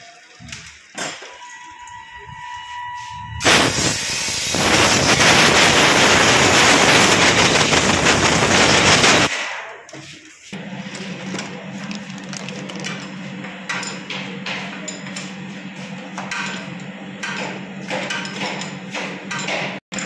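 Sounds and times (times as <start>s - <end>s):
compressed air blow gun hissing: 3.4s - 9.3s.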